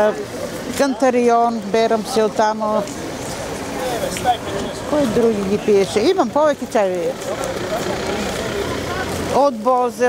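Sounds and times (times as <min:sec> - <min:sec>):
outdoor background rumble: 0:01.5 - 0:10.0.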